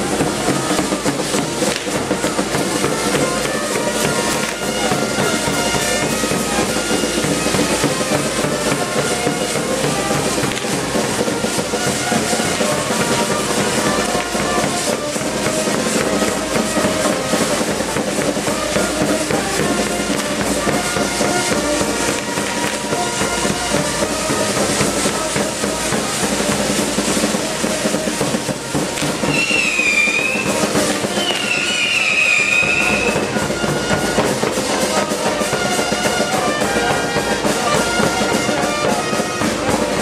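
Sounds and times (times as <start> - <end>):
band music: 0.0 - 40.0
fireworks crackling and hissing: 0.0 - 40.0
wavering high whistle: 27.2 - 33.4.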